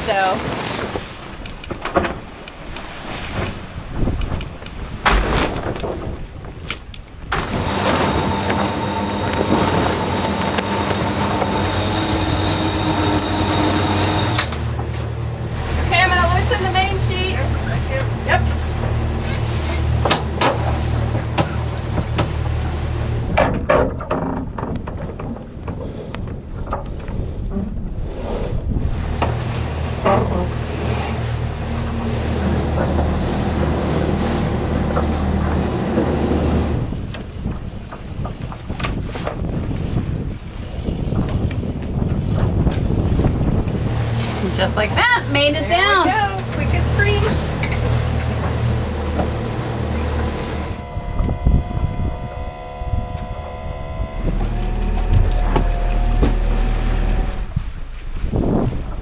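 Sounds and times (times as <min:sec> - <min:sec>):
water noise: 0:00.0 - 0:59.0
wind: 0:00.0 - 0:59.0
lines squeaking and clicking: 0:01.4 - 0:15.2, 0:46.4 - 0:57.5
steady low hum: 0:42.4 - 0:59.0.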